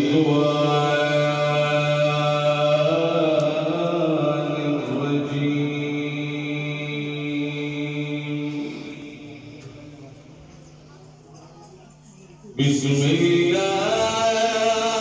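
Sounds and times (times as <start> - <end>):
man chanting through loudspeakers: 0.0 - 10.2, 12.6 - 15.0.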